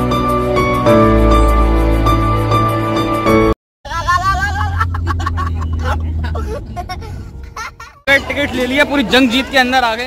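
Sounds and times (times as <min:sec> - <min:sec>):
car drone inside cabin: 0:03.9 - 0:08.1
people talking: 0:08.1 - 0:10.0.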